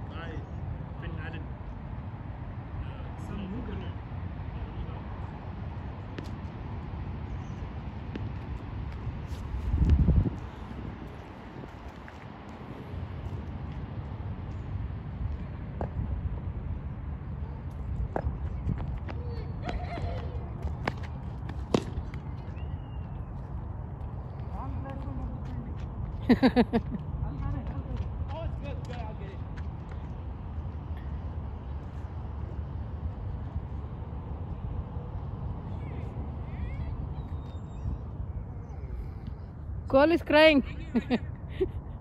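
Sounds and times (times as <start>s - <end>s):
wind rumbling on microphone: 0.0s - 42.0s.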